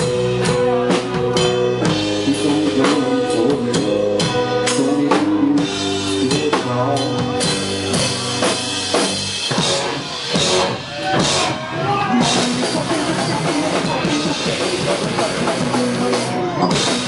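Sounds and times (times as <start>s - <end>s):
driving drum kit: 0.0s - 17.0s
punk rock band playing live: 0.0s - 17.0s.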